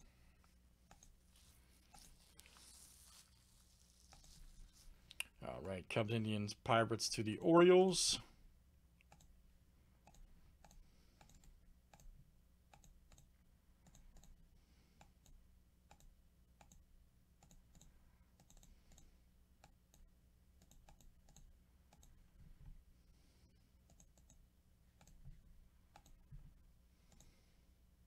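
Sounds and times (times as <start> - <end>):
mouse and keyboard clicking: 10.0 - 12.1.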